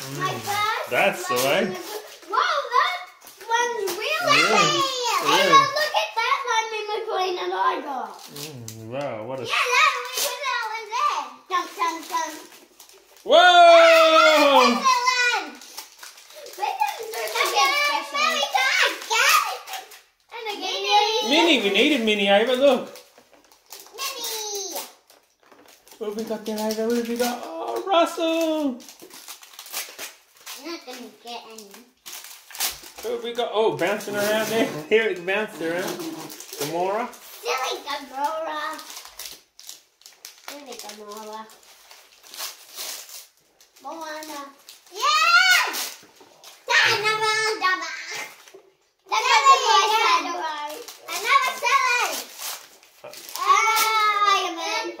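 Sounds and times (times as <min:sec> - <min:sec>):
foil packets crinkling: 0:00.0 - 0:06.6, 0:09.5 - 0:54.8
children vocalizing: 0:00.0 - 0:12.4, 0:13.2 - 0:21.9, 0:46.6 - 0:52.3, 0:53.0 - 0:55.0.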